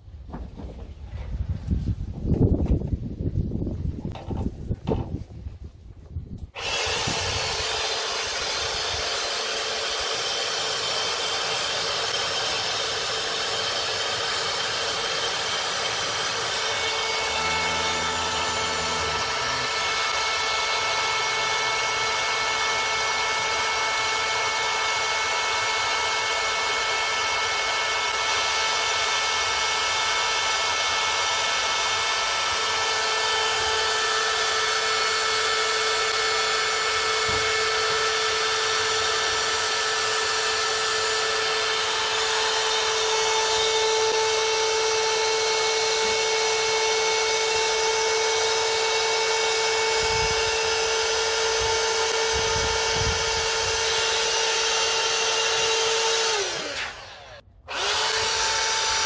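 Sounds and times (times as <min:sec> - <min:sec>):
air pump whining: 0:06.4 - 0:59.0.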